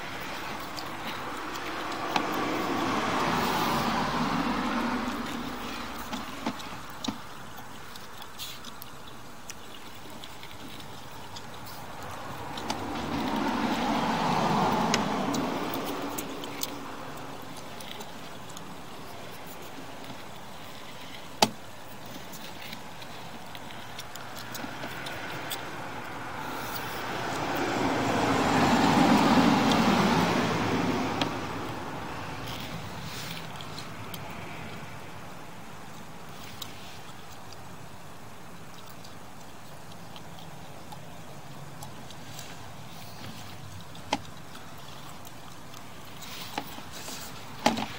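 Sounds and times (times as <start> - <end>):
background hiss: 0.0 - 47.9
cars passing: 0.0 - 47.9.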